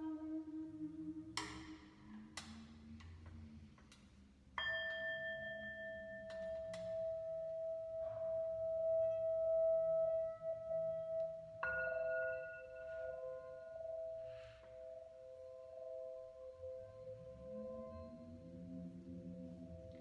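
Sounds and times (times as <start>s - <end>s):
singing bowl ringing: 4.6s - 19.0s.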